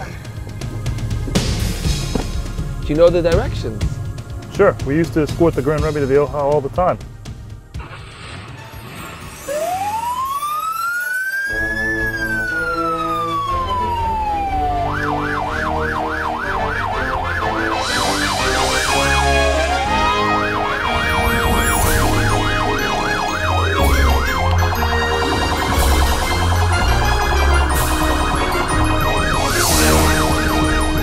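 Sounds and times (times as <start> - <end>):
background music with a beat: 0.0 - 7.8, 11.5 - 31.0
electronic police siren: 9.4 - 31.0.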